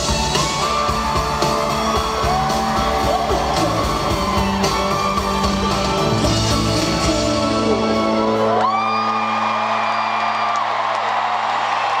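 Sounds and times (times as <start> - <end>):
live band playing: 0.0 - 10.1
high rising whoop: 8.2 - 12.0.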